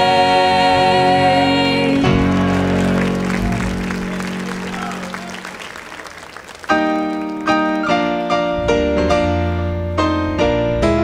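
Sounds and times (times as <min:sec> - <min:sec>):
gospel singers holding a chord: 0:00.0 - 0:06.0
band with electric bass: 0:00.0 - 0:11.0.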